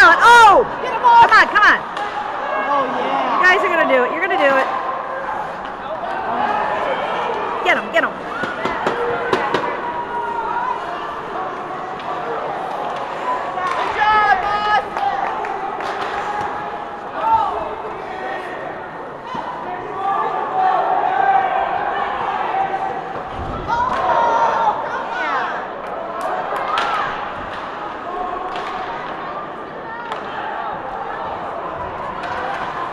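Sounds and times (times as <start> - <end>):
spectators' voices: 0.0 - 32.9
hockey sticks and puck clacking: 0.8 - 2.4, 7.2 - 10.0, 11.5 - 18.0, 25.8 - 29.2, 30.0 - 30.5, 31.8 - 32.9
loud shout: 13.2 - 18.6, 19.2 - 27.3.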